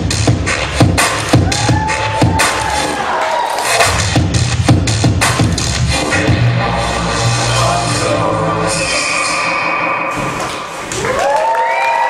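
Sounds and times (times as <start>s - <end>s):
show music: 0.0s - 11.4s
audience applause and cheering: 1.2s - 4.0s, 10.3s - 12.0s
high rising whoop: 1.4s - 3.8s, 10.9s - 12.0s.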